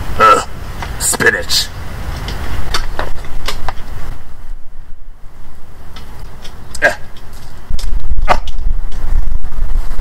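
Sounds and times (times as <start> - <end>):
wind buffeting microphone: 1.7 - 10.0.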